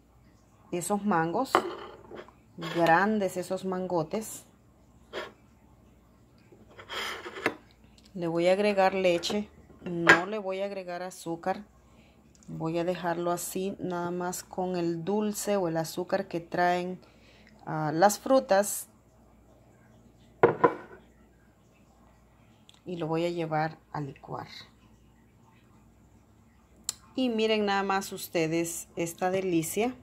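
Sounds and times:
kitchenware knocking on countertop: 20.4s - 21.0s.

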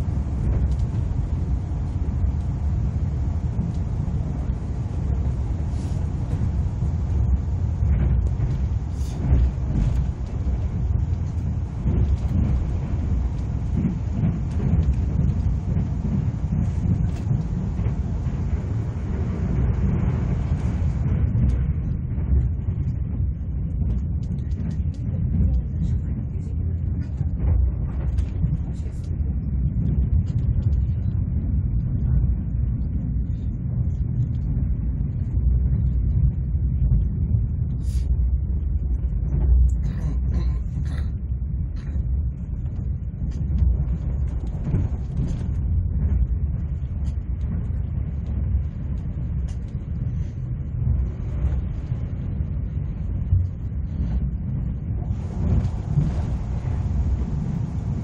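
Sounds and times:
train rumble from inside cabin: 0.0s - 58.0s.

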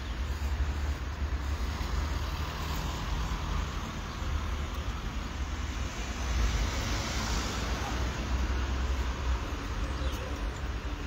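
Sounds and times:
distant road traffic: 0.0s - 11.0s.

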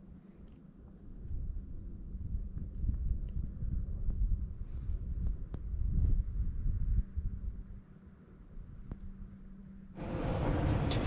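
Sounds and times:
wind buffeting microphone: 1.1s - 7.8s.

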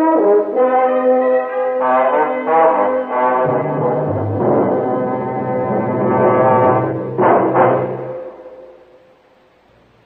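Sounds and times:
brass orchestral chord: 0.0s - 8.8s.

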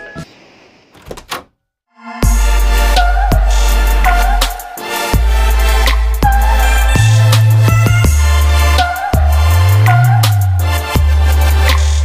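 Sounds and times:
background music: 2.2s - 12.0s.

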